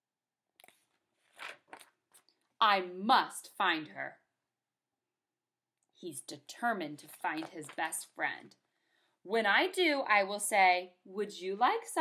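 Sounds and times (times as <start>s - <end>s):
book pages rustling: 0.6s - 2.3s.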